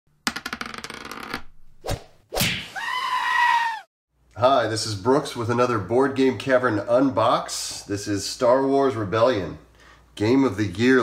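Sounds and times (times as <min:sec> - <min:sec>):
single smack: 0:01.9 - 0:02.7.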